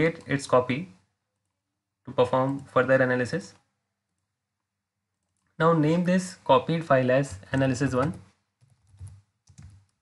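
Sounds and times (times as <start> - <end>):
faint computer keyboard keystrokes: 7.3 - 10.0.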